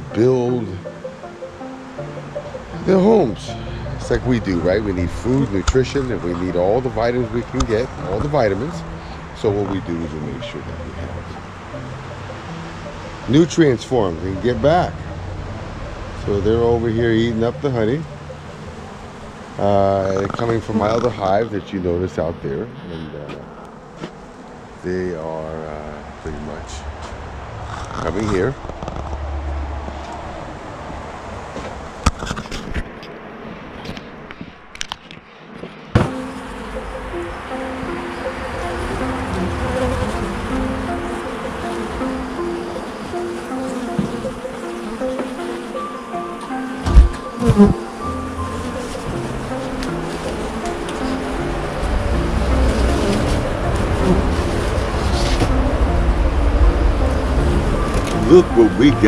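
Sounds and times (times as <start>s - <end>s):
background music with stepping melody: 0.0s - 19.5s, 36.0s - 59.0s
honey bees buzzing: 0.0s - 32.1s, 35.4s - 59.0s.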